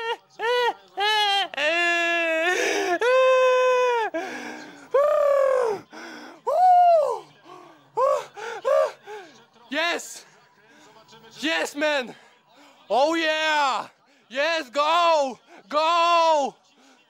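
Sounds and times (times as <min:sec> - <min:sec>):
man gasping: 0:02.5 - 0:03.1, 0:04.1 - 0:04.9
man yelling excitedly: 0:12.9 - 0:16.5.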